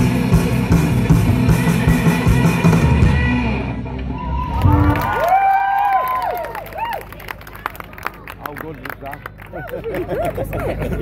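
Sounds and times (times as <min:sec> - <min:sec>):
rock band playing live: 0:00.0 - 0:05.2
crowd cheering and whooping: 0:04.0 - 0:08.3, 0:09.4 - 0:11.0.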